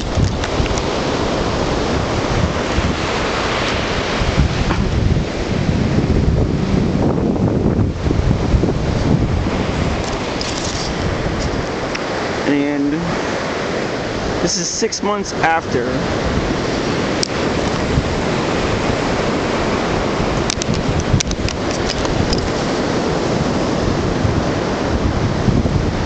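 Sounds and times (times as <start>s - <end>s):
ocean surf: 0.0s - 26.0s
wind buffeting microphone: 0.0s - 26.0s.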